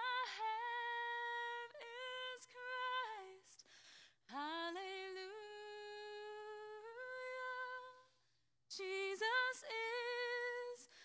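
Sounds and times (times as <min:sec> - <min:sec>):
woman singing unaccompanied: 0:00.0 - 0:03.5, 0:08.7 - 0:10.9.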